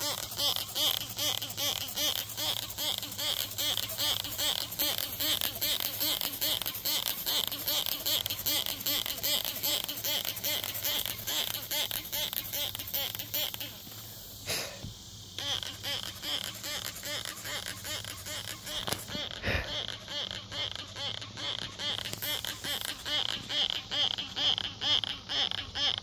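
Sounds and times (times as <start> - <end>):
insects calling: 0.0 - 26.0.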